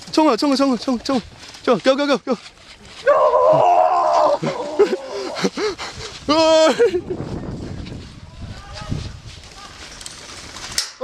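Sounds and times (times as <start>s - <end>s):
men yelling and shouting: 3.0s - 5.6s, 6.2s - 7.2s.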